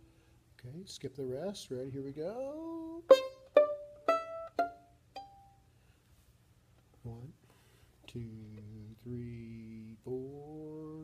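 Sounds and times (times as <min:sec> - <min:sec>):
violin pizzicato notes: 0:02.6 - 0:05.7.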